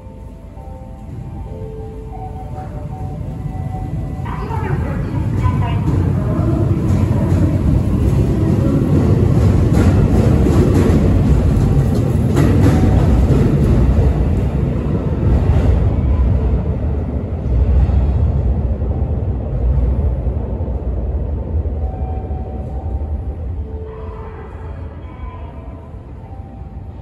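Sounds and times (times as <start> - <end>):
train wheels rumbling on rail: 0.0 - 23.7.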